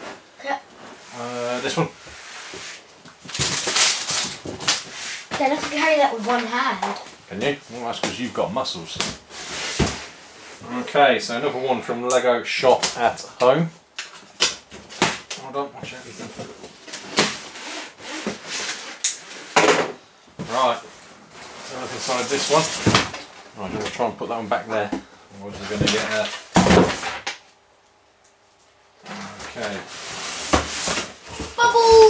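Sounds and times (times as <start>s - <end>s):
cardboard ripping: 3.3s - 4.9s
cardboard boxes scraping and rustling: 9.3s - 10.8s, 29.1s - 31.9s.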